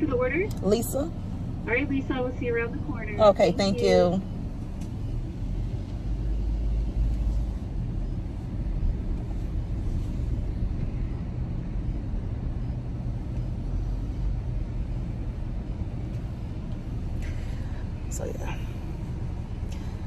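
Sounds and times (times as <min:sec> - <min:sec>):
car rumble from inside cabin: 0:00.0 - 0:20.0.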